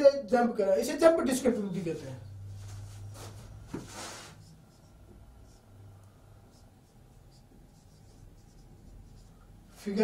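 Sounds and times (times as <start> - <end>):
marker writing on whiteboard: 3.6 - 10.0.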